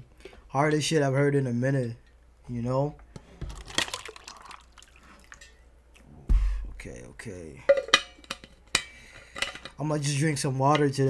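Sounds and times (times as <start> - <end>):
water sloshing in bottle: 3.4 - 5.5.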